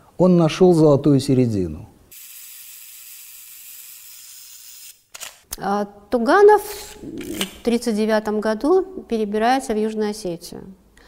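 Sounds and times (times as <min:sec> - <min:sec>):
camera shutter clicks: 0:04.6 - 0:05.5
person speaking: 0:05.6 - 0:10.8.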